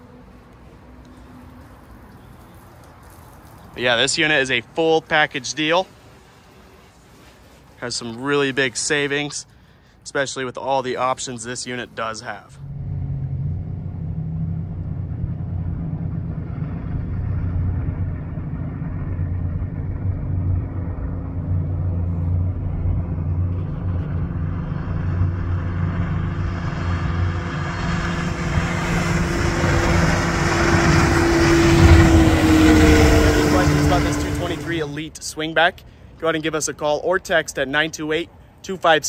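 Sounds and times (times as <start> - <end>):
water noise: 11.8 - 35.0
wind noise: 12.6 - 34.6
outboard motor running: 12.6 - 34.9.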